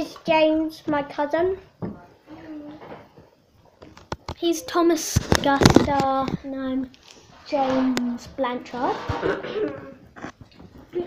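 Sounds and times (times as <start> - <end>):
child coughing: 9.1 - 10.0.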